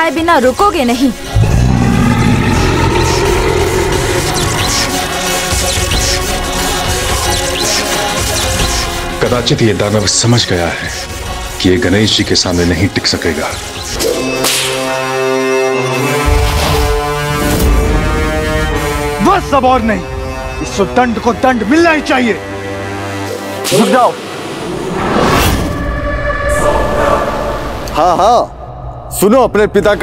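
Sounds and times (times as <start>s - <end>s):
loud low rumble: 1.3s - 5.1s.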